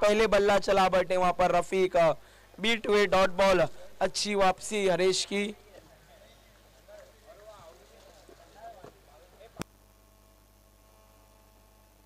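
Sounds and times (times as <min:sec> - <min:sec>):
background chatter: 0:05.2 - 0:09.6.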